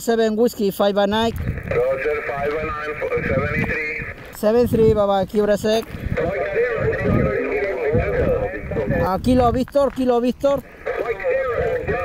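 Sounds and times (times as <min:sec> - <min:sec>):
garbled radio voice: 0:00.7 - 0:12.0.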